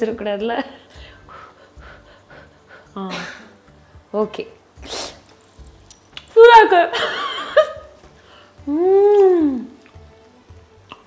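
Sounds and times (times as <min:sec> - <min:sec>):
breathy mouth sounds: 0:10.8 - 0:11.0.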